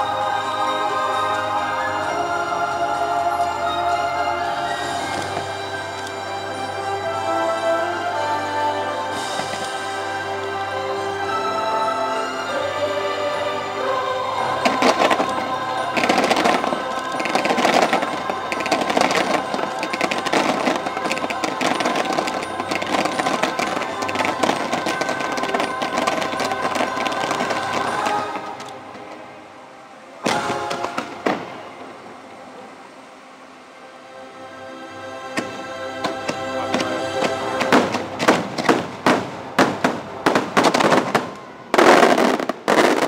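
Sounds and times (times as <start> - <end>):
loud orchestral music: 0.0 - 28.9, 30.2 - 32.0, 34.1 - 43.0
fireworks bursting and cracking: 4.7 - 6.1, 8.2 - 10.4, 13.8 - 29.2, 30.2 - 32.0, 36.1 - 43.0
heavy bangs: 14.4 - 28.7, 36.1 - 43.0.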